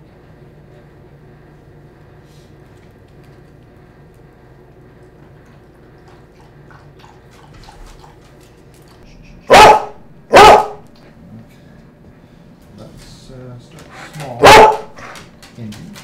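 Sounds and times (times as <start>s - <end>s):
dog barking: 9.5s - 10.9s, 14.4s - 15.3s.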